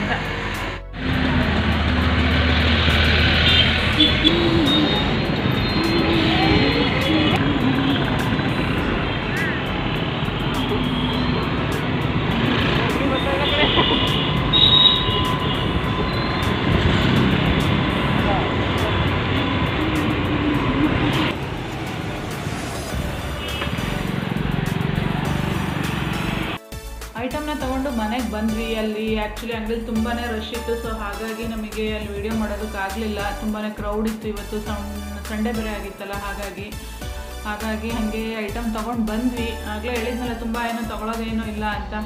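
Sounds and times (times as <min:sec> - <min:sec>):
vehicle engines running: 0:00.0 - 0:26.6
voices: 0:03.1 - 0:08.7.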